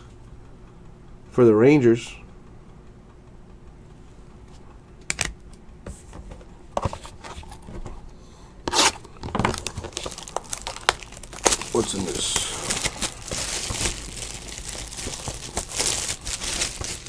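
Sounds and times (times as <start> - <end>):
plastic wrap crinkling and tearing: 8.7 - 17.0.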